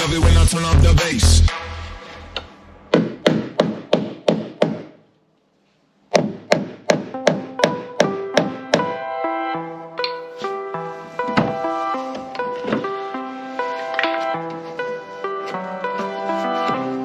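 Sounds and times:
hammer knocking on wooden block: 2.9 - 5.0, 6.1 - 9.0
background music sustained notes: 6.9 - 17.0.

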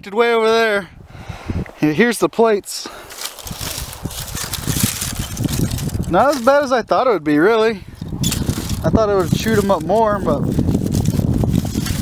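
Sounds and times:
styrofoam plates rustling and crackling: 2.9 - 6.8, 8.2 - 12.0.

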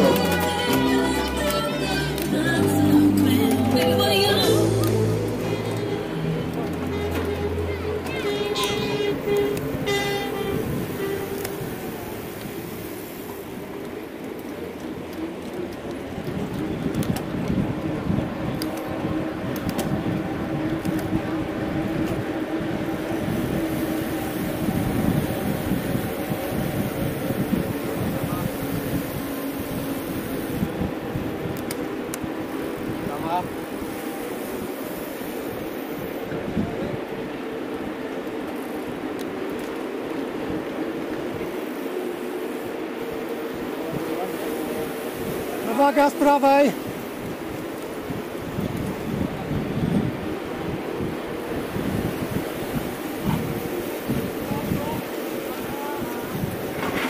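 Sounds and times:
indistinct voices: 0.0 - 12.4
bikes rolling on asphalt: 0.0 - 57.0.

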